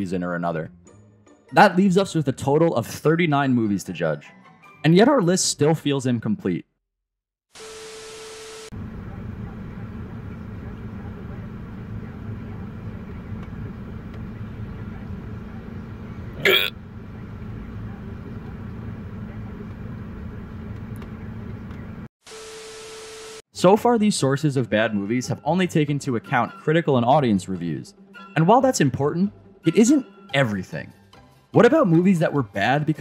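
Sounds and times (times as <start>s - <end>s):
short voice sound: 16.4s - 16.7s.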